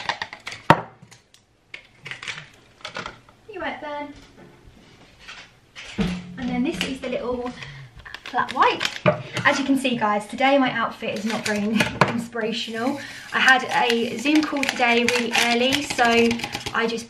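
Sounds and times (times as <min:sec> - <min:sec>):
foil sachet rustling: 0:06.7 - 0:09.7, 0:11.1 - 0:11.8, 0:12.4 - 0:17.0.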